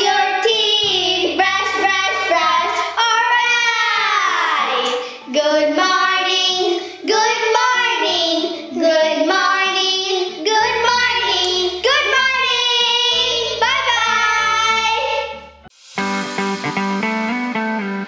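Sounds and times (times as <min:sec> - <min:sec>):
girls singing: 0:00.0 - 0:15.6
backing track: 0:11.2 - 0:18.0
low bass line: 0:15.5 - 0:18.0.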